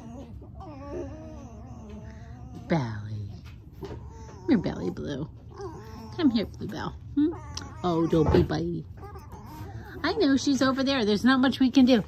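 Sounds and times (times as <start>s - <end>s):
fox whining: 0.0s - 3.1s, 3.8s - 10.3s.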